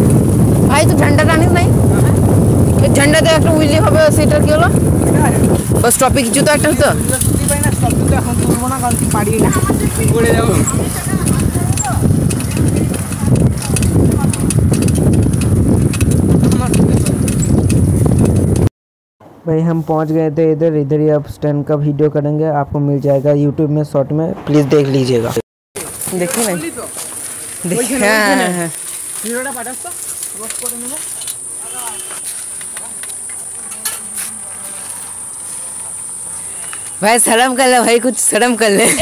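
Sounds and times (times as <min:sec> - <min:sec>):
wind and road noise: 0:00.0 - 0:39.0
insects droning: 0:25.8 - 0:39.0.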